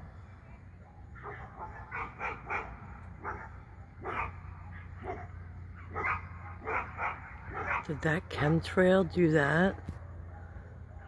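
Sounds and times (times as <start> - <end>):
dog barking: 0.9 - 8.0.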